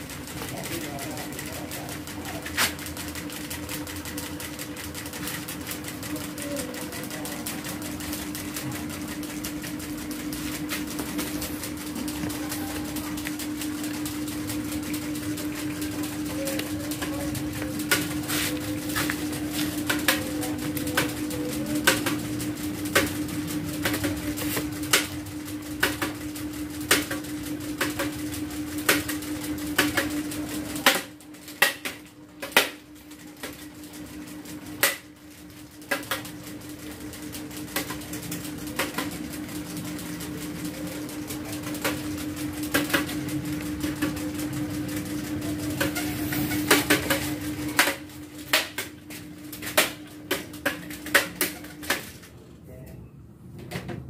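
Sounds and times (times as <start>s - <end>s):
fan motor hum: 0.0s - 54.0s.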